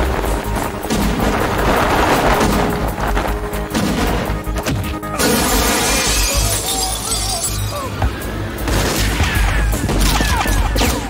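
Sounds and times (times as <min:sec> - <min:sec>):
loud background music: 0:00.0 - 0:11.0
loud shattering crash: 0:05.2 - 0:07.8.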